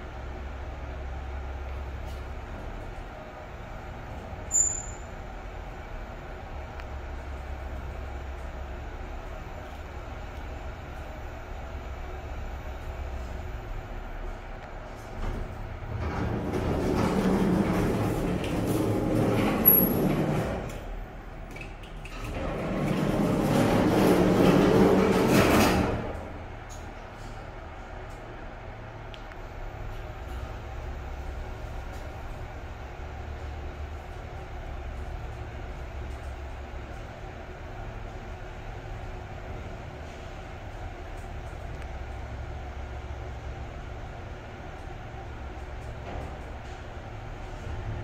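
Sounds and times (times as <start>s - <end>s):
lift car low rumble: 0.0s - 48.0s
lift doors closing: 4.2s - 5.2s, 14.8s - 28.9s.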